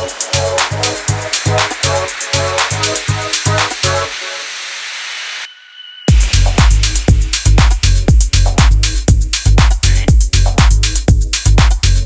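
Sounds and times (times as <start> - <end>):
kick drum and bass: 0.0 - 4.1, 6.1 - 12.0.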